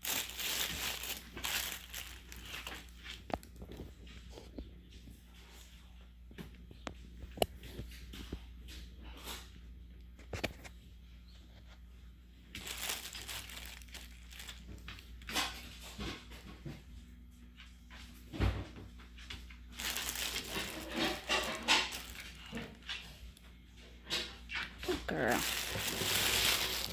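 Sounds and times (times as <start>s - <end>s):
dog rustling through stuffed toys: 0.0s - 6.0s, 11.6s - 16.4s, 19.0s - 26.9s.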